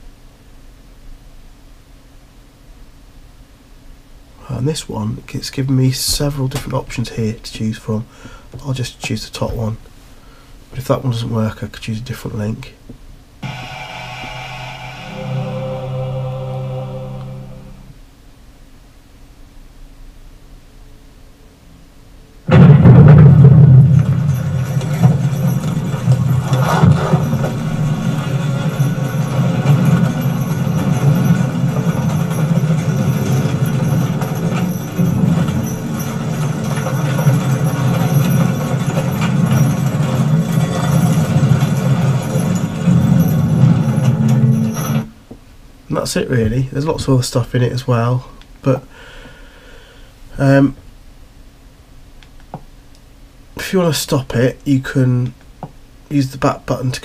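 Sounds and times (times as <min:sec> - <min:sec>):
drama soundtrack through speakers: 0:13.4 - 0:17.9
deep rumble with drum hits: 0:22.5 - 0:38.4.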